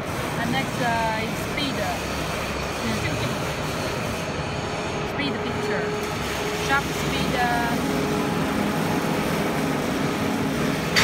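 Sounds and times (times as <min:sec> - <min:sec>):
machinery noise: 0:00.0 - 0:11.0
voices: 0:00.3 - 0:08.8.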